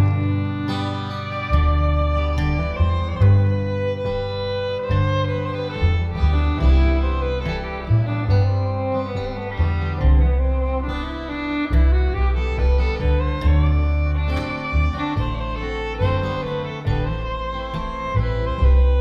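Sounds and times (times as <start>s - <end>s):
fiddle melody: 0.0s - 19.0s
guitar: 0.0s - 19.0s
upright bass walking line: 0.0s - 19.0s.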